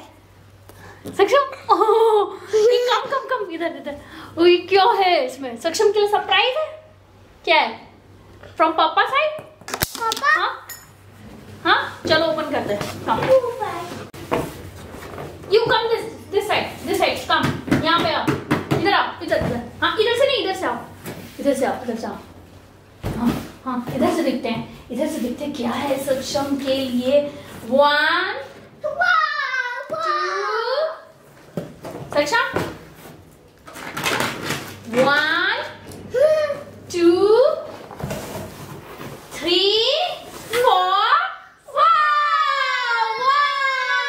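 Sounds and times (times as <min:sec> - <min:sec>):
child's excited call: 0:28.8 - 0:30.9.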